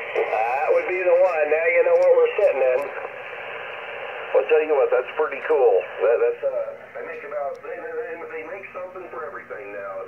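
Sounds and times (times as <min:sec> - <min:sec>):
receiver hiss: 0:00.0 - 0:10.0.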